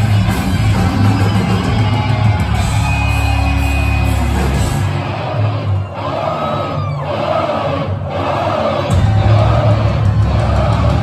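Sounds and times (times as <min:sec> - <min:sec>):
crowd shouting and cheering: 0:00.0 - 0:11.0
heavy metal band playing: 0:00.0 - 0:11.0.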